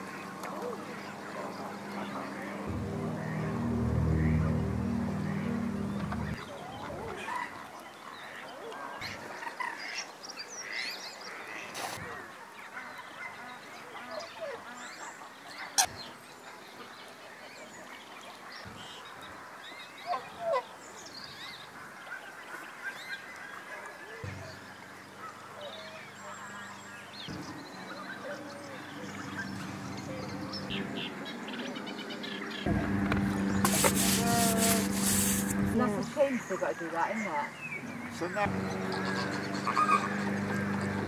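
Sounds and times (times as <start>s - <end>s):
duck and goose calls: 38.7s - 41.0s.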